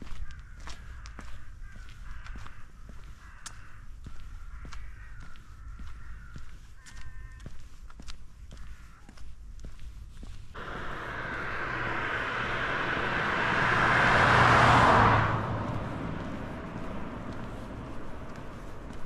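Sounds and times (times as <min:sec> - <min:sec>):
footsteps on pavement: 0:00.0 - 0:10.5, 0:16.2 - 0:19.0
car passing by: 0:10.6 - 0:19.0.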